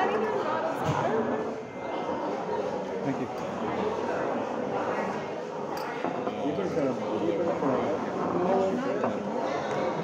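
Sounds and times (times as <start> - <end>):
group of people chatting: 0.0 - 10.0.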